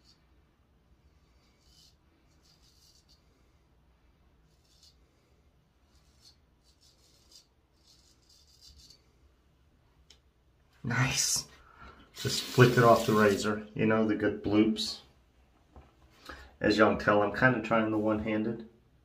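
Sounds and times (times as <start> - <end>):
razor scraping stubble: 1.5 - 3.4, 4.4 - 9.2.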